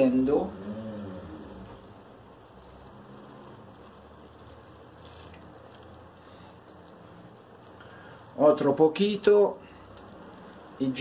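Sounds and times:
broth simmering in a pot: 0:00.0 - 0:11.0.

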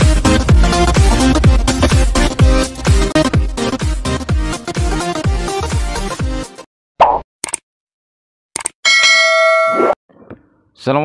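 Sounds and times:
bright bell chime: 0:08.9 - 0:10.0.

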